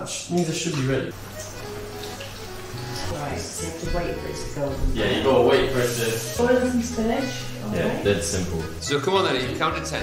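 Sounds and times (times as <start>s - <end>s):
background music: 0.0s - 10.0s
vegetables sizzling in hot oil: 0.7s - 10.0s.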